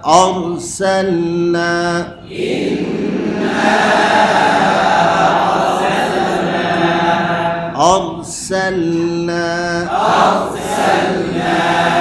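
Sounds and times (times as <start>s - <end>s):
man chanting melodic recitation: 0.0s - 2.3s, 7.7s - 10.4s.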